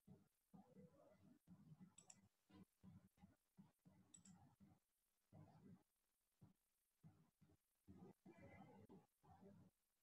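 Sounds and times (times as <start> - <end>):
soft clicks: 2.0 - 2.3, 4.1 - 4.4.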